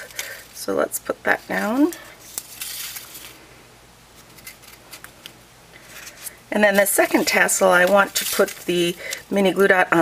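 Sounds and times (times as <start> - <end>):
paper and adhesive handling: 1.3 - 3.4, 4.2 - 9.3.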